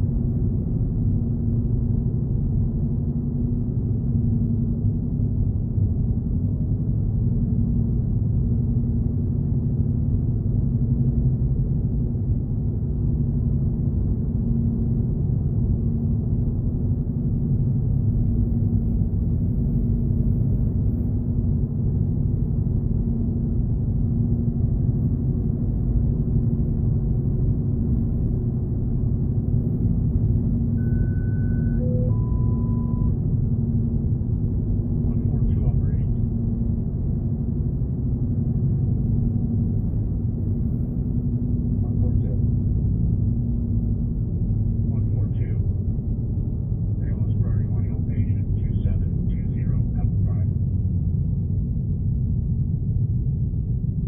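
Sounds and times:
car road and engine rumble: 0.0 - 54.0
short electronic tones: 30.8 - 33.2.

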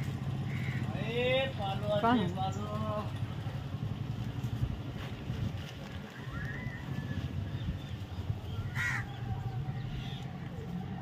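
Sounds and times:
small engine running: 0.0 - 6.2.

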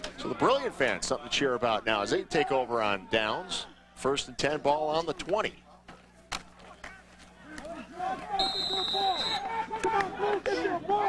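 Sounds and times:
voices talking: 0.1 - 11.0
referee's whistle: 8.3 - 9.6.

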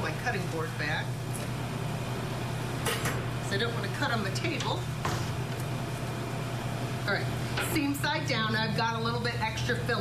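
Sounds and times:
kitchen equipment humming: 0.0 - 10.0.

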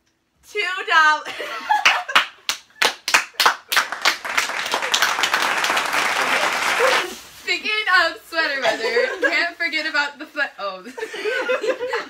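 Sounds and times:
laughter: 1.3 - 2.3, 8.6 - 9.5, 10.8 - 12.0
hand clapping: 1.8 - 7.2.

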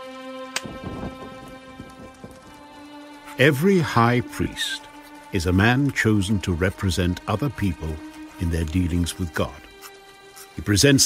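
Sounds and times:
background music chord: 0.0 - 11.0
thunder rumbling knocks: 0.6 - 4.6.

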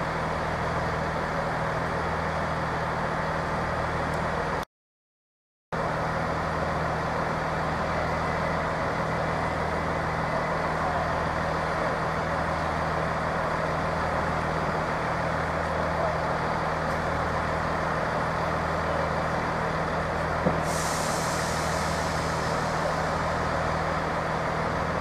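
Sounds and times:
diesel engines idling: 0.0 - 4.6, 5.8 - 25.0.

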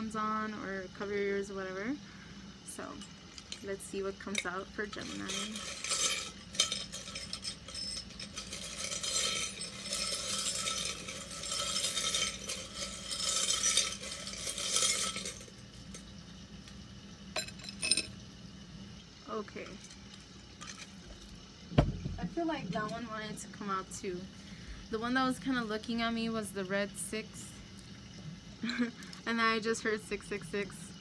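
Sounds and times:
charms rattling in a container: 2.8 - 16.1
dull thump: 21.7 - 22.3.

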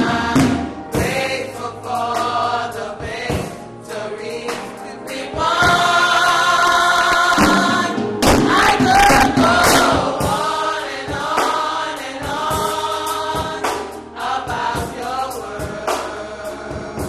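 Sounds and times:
church choir singing gospel: 0.0 - 17.0.

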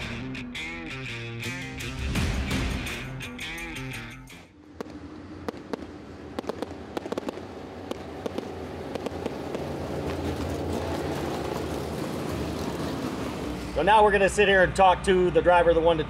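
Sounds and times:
race car engines running: 4.6 - 16.0
exhaust pops and crackles: 4.8 - 14.1.

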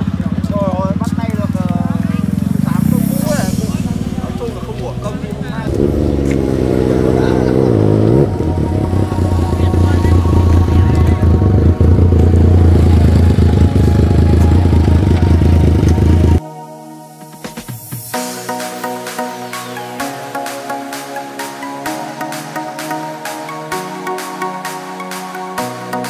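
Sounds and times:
deep exhaust rumble: 0.0 - 16.4
motorcycle engine revving: 0.0 - 16.4.

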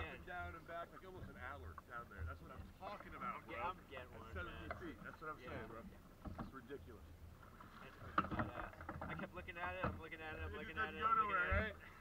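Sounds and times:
boat rumble: 0.0 - 12.0.

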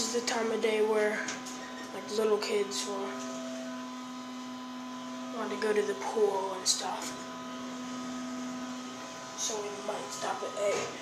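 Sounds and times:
faint constant tones: 0.0 - 11.0
ventilation fan hum and hiss: 0.0 - 11.0.

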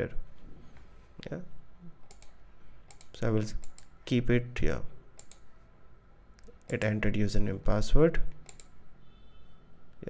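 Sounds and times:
computer mouse clicking: 2.0 - 3.9, 5.2 - 5.5, 6.4 - 6.9, 8.3 - 8.8.

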